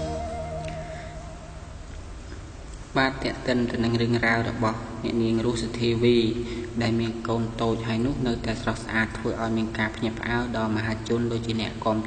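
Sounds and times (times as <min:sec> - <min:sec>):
wavering music note: 0:00.0 - 0:02.0
faint low hum and hiss: 0:00.0 - 0:12.0.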